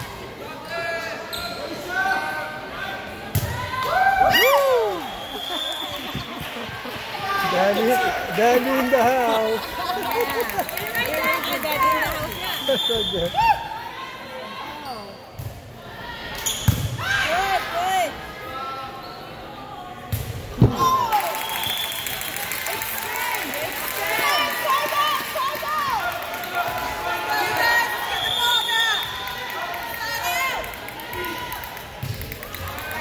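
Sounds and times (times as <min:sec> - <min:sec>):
sneakers squeaking on floor: 0:01.3 - 0:01.8.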